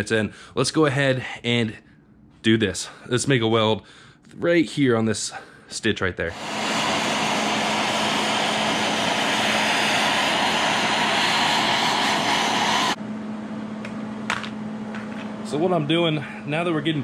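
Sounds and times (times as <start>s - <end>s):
steady low hum: 0.0s - 17.0s
gas torch hissing: 6.3s - 13.0s.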